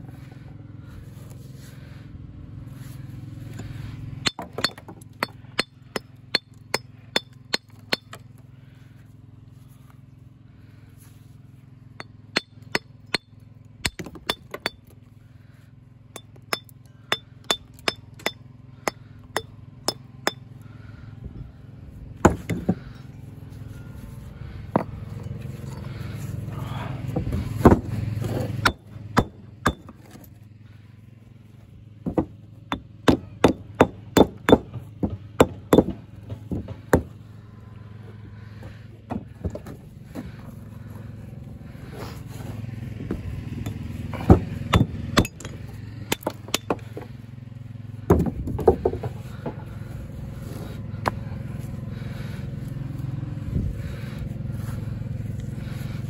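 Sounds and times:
steady low hum: 0:00.0 - 0:56.0
hammer striking stone: 0:04.2 - 0:08.1, 0:32.1 - 0:36.0.

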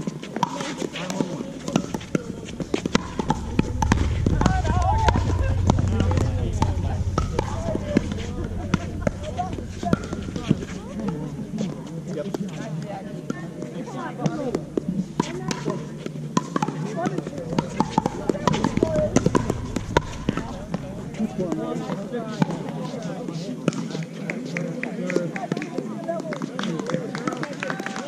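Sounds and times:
indistinct voices talking: 0:01.2 - 0:23.4.

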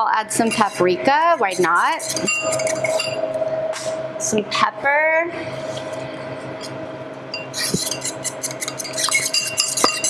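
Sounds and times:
steady hum: 0:00.0 - 0:10.0
glass jar clinking against spoon: 0:08.8 - 0:10.0.

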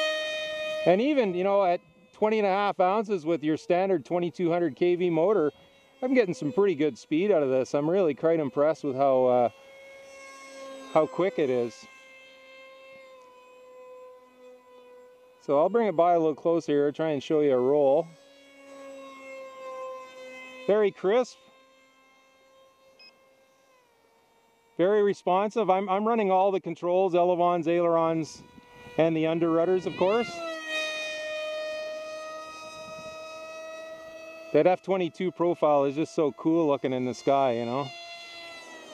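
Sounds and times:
distant electric motor whine: 0:00.0 - 0:38.9.

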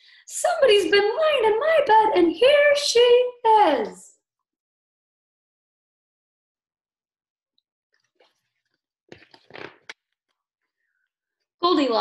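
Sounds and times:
book page turning: 0:08.0 - 0:10.1.

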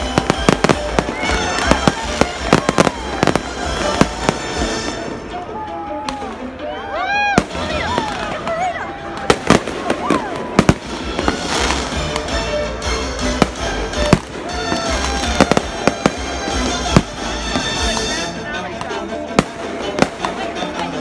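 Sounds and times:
fireworks bangs: 0:00.0 - 0:05.2, 0:07.4 - 0:12.5, 0:13.1 - 0:21.0
crowd voices: 0:00.0 - 0:21.0.

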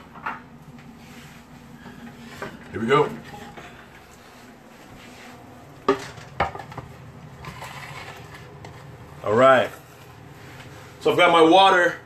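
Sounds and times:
kitchen clatter: 0:05.8 - 0:08.8.

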